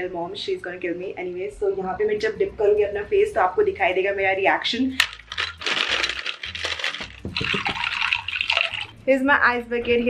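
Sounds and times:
ice cubes clattering into glass dish: 5.0s - 8.9s.

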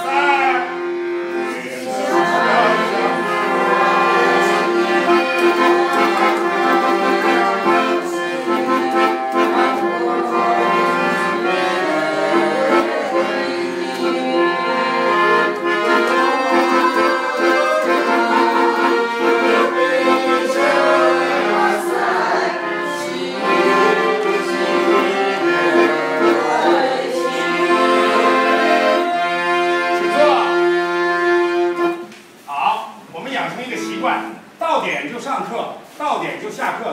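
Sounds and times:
piano accordion playing a tune: 0.0s - 32.2s, 33.5s - 34.6s.

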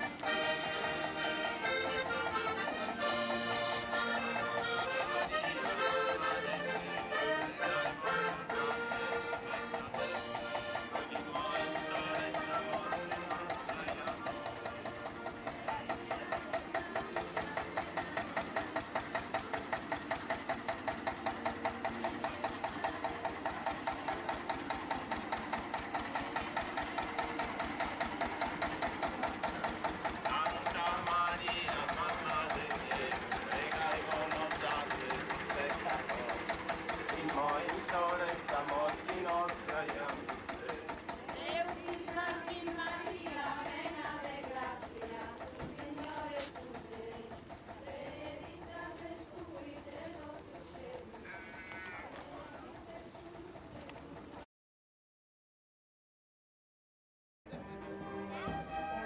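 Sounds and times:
crowd voices: 0.0s - 54.4s
tractor engine running: 0.0s - 54.4s.

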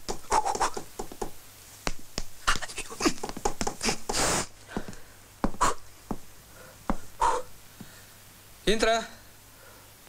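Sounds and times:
light boxing taps: 0.0s - 7.2s
man huffing breaths: 2.7s - 8.2s.

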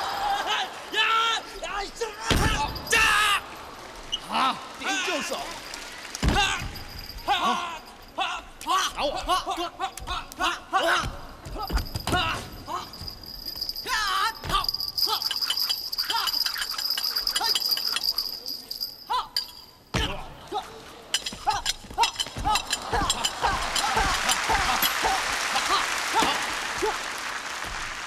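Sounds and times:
bodies thudding on wooden stage: 10.9s - 13.4s
performers shouting yells: 22.0s - 27.1s
audience noise: 22.3s - 28.0s.

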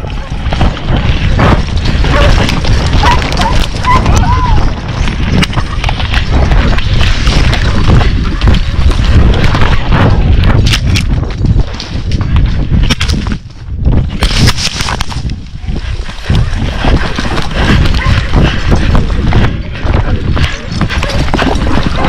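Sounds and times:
horse hoofbeats galloping: 0.0s - 22.0s
wind buffeting microphone: 0.0s - 22.0s.

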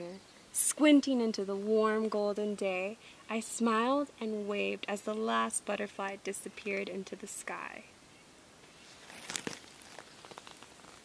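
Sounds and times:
book rustling and crackling: 8.7s - 11.0s.

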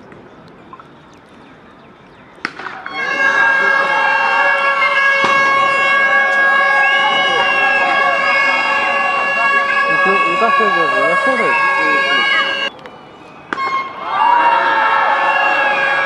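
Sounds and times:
people shouting: 2.6s - 12.7s, 13.8s - 16.0s
loud steady horn-like tone: 2.8s - 16.0s.

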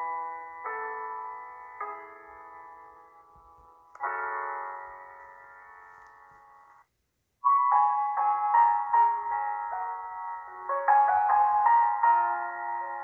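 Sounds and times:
soft slow piano chords: 0.0s - 13.0s.

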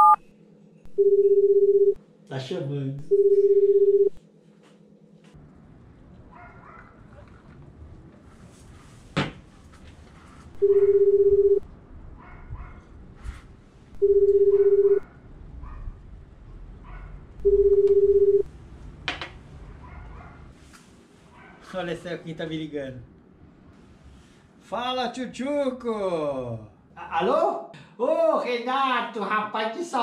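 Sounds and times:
telephone ringback tone: 0.0s - 0.2s, 1.0s - 2.0s, 3.1s - 4.2s, 10.6s - 11.6s, 14.0s - 15.0s, 17.4s - 18.5s.

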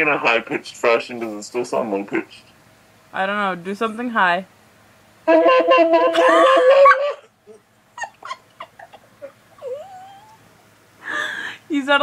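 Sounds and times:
high-pitched vocalizing: 5.3s - 10.4s
laughter bursts: 5.4s - 9.3s.

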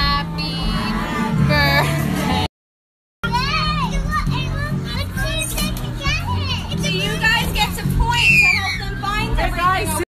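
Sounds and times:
background music: 0.0s - 2.5s, 3.2s - 10.0s
children shouting and squealing: 3.2s - 7.0s, 8.0s - 9.3s.

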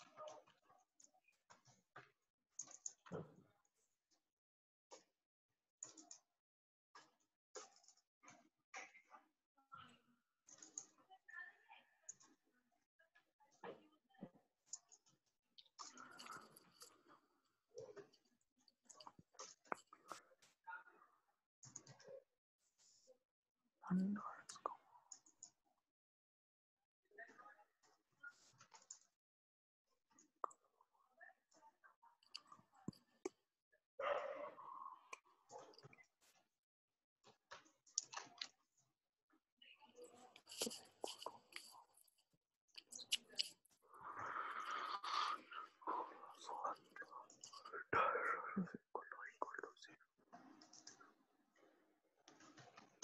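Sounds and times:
man whispering and muttering: 15.8s - 17.1s, 23.9s - 24.8s, 40.3s - 41.8s, 42.8s - 50.0s.

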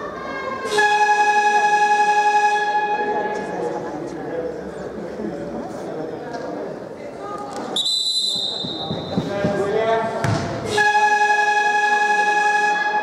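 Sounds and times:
electronic game horn: 0.7s - 3.1s, 10.7s - 13.0s
referee's whistle: 7.8s - 9.3s.

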